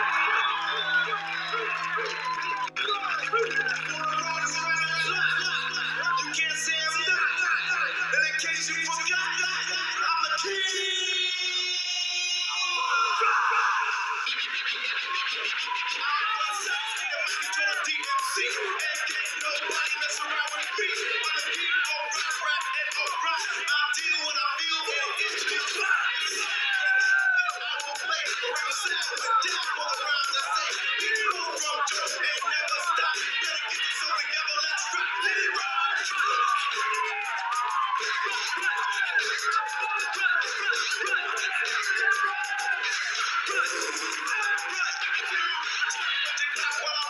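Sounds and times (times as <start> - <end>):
rapping over music: 0.0 - 47.0.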